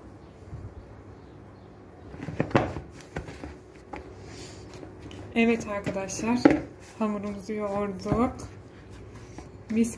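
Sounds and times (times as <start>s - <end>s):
hands kneading dough: 2.2s - 9.9s.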